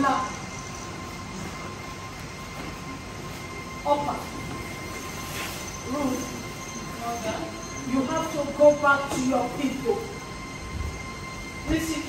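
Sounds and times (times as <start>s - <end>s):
rushing hum: 0.0s - 12.0s
thin high whine: 0.0s - 12.0s.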